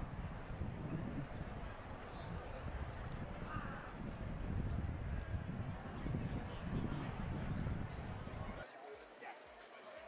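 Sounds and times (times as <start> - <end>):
wind rumbling on microphone: 0.0 - 8.6.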